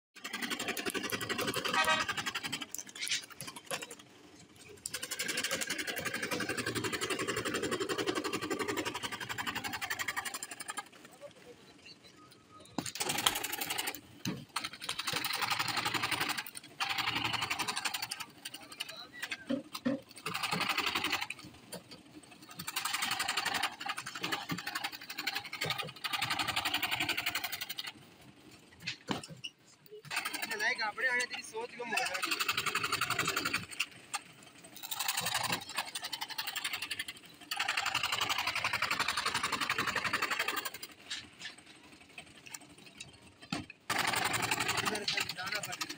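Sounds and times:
reciprocating saw cutting fibreboard: 0:00.2 - 0:03.9, 0:34.8 - 0:41.0, 0:43.9 - 0:45.9.

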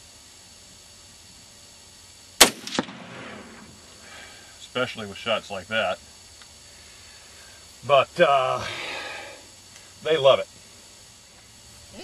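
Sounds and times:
rifle shot: 0:02.4 - 0:03.8.

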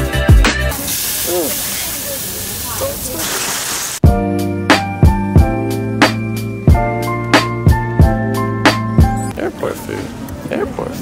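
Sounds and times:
music: 0:00.0 - 0:00.8, 0:04.0 - 0:09.3
beef sizzling on griddle: 0:00.7 - 0:04.0.

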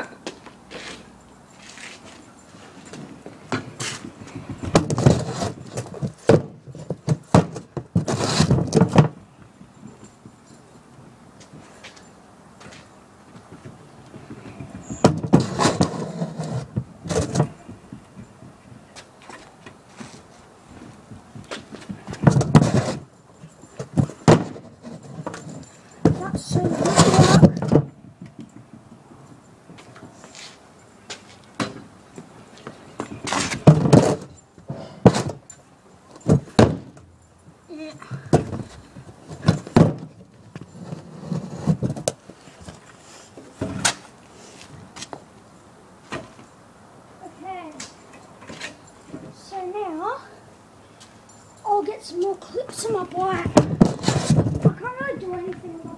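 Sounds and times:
low rubbing and rustling: 0:00.7 - 0:10.4, 0:13.4 - 0:28.3, 0:38.6 - 0:45.0, 0:51.9 - 0:55.9
knocks and thumps: 0:13.4 - 0:18.8, 0:21.0 - 0:23.0, 0:23.6 - 0:29.0, 0:38.1 - 0:40.7, 0:53.2 - 0:55.9
bike wheels rattling over concrete: 0:21.2 - 0:28.8.

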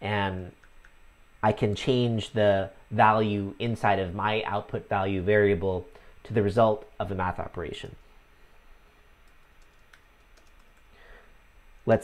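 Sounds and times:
computer keyboard key clicks: 0:09.2 - 0:10.9.

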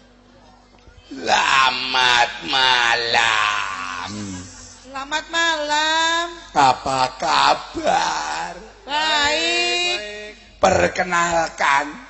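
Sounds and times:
man crying out: 0:01.1 - 0:04.8.

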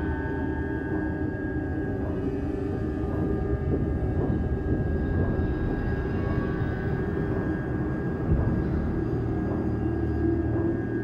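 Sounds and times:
dark low drone: 0:00.0 - 0:11.0.

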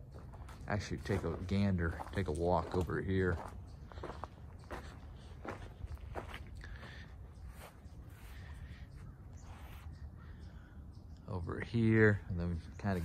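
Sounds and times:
footsteps on grass: 0:00.0 - 0:09.9.

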